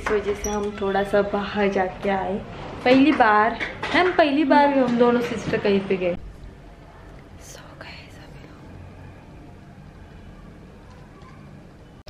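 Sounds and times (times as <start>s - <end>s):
soft whispering: 7.1s - 9.1s.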